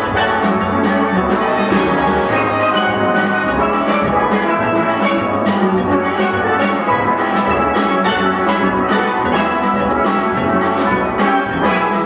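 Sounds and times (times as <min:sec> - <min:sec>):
steel band playing: 0:00.0 - 0:12.0.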